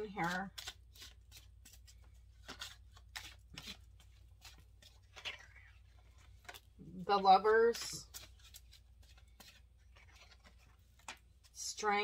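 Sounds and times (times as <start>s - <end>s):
cards being shuffled: 0.0s - 11.9s.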